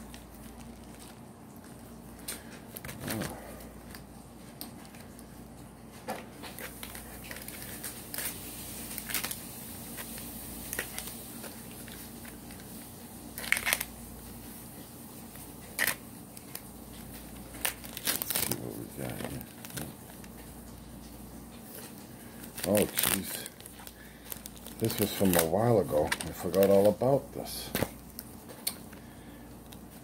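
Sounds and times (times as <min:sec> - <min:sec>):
package wrapping crinkling and tearing: 0:00.0 - 0:30.0.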